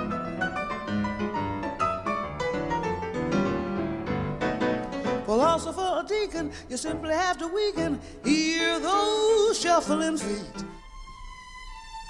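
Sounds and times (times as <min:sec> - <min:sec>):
piano notes: 0:00.0 - 0:12.0.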